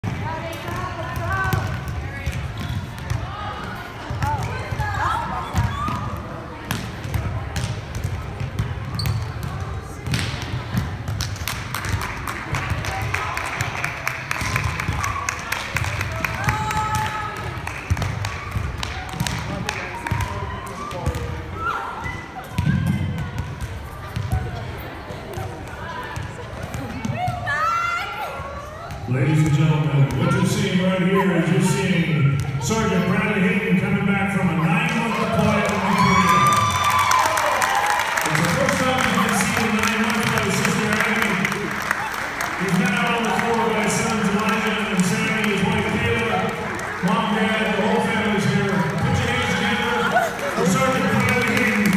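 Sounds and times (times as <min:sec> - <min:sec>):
volleyballs bouncing on gym floor: 0:00.0 - 0:30.8, 0:32.2 - 0:32.8, 0:35.0 - 0:41.7
players chatting: 0:42.5 - 0:51.9.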